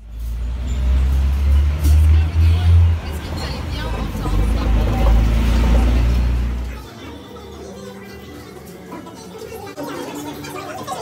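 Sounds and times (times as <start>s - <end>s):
indistinct voices: 0.0s - 11.0s
music: 6.2s - 11.0s.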